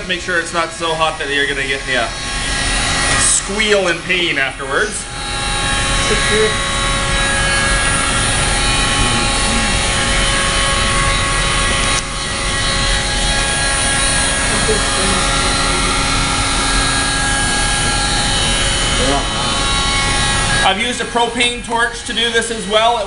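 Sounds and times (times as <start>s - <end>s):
heat gun fan blowing: 0.0s - 23.0s.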